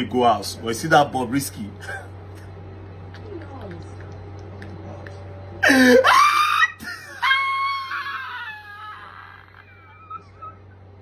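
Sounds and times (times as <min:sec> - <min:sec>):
man shrieking with laughter: 0:05.6 - 0:10.5.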